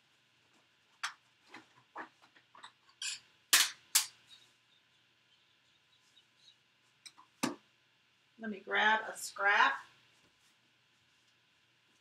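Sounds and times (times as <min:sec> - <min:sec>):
clicks and knocks of rummaging: 0:01.0 - 0:04.2.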